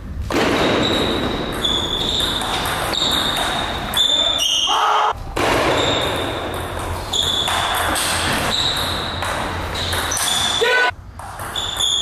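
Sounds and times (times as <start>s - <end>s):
table tennis rally: 0.2s - 12.0s.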